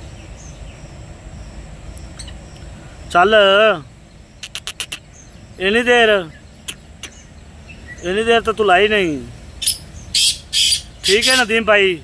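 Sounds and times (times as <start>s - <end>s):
brief clicks: 4.4s - 5.0s.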